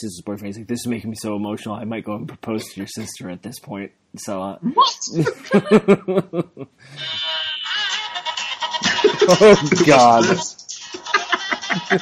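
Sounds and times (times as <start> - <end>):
person laughing: 5.2 - 6.7, 8.8 - 12.0.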